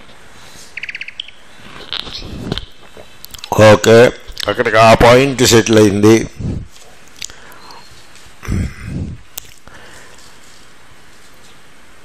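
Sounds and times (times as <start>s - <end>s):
bird chirping: 0.7s - 2.4s.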